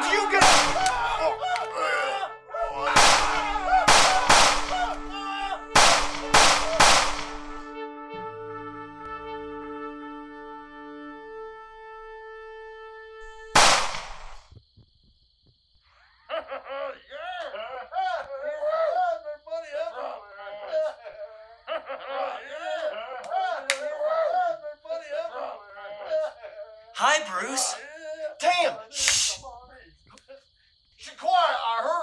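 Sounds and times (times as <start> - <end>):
gunshots with ringing tail: 0.2 - 1.2, 2.8 - 5.1, 5.7 - 7.6, 13.5 - 14.4.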